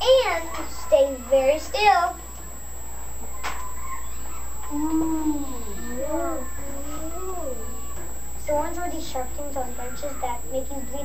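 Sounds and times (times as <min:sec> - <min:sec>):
child making wavering vocal sounds: 0:04.7 - 0:08.0.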